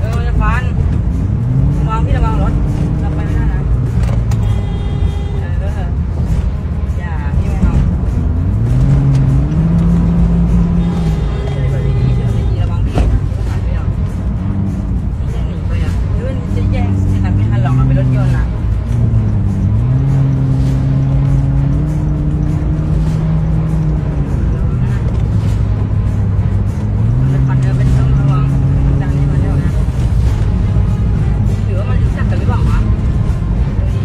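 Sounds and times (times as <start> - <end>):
car engine and road noise: 0.0 - 34.0.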